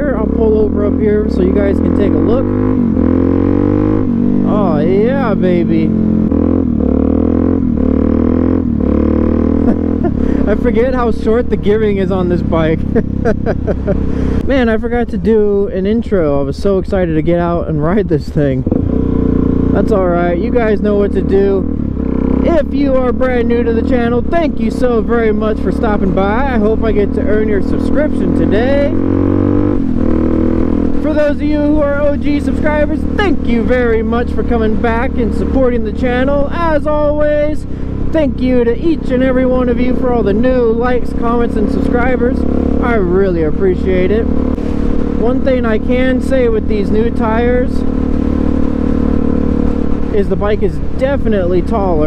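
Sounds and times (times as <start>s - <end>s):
motorcycle engine accelerating: 0.0s - 52.0s.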